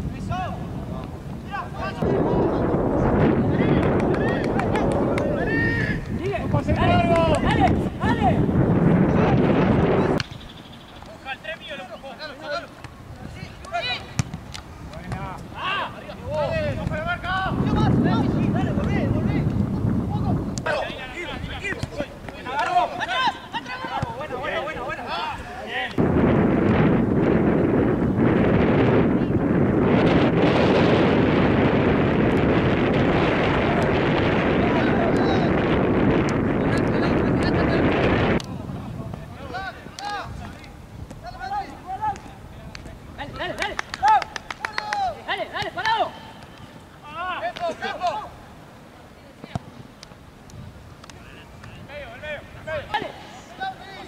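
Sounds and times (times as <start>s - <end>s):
wind buffeting microphone: 0.0s - 45.3s, 50.2s - 52.9s.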